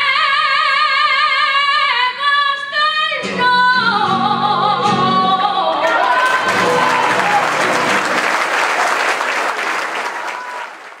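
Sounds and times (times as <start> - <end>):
person singing: 0.0 - 7.8
audience applauding: 5.6 - 11.0.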